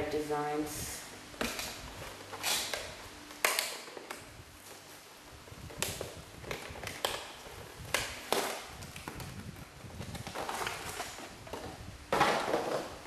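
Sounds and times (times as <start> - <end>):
plastic packaging clicking and crinkling: 1.4 - 4.8, 5.7 - 13.0.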